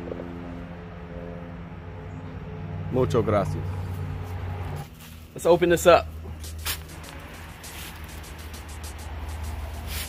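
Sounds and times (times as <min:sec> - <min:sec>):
pitchfork scraping and crunching compost: 0:04.2 - 0:05.4, 0:09.8 - 0:10.0.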